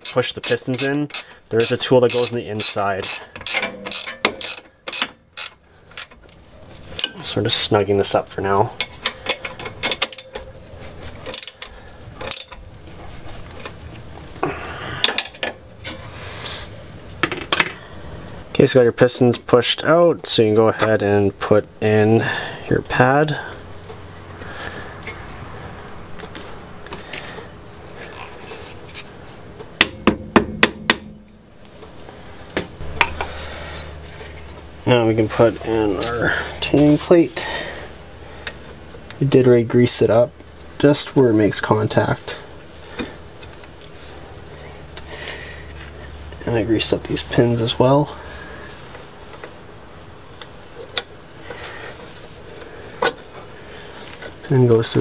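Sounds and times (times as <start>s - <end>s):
hammer knocking on metal: 29.8s - 31.2s.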